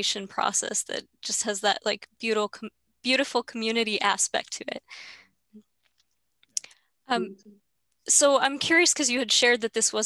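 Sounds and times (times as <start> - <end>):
breath: 4.9 - 5.4.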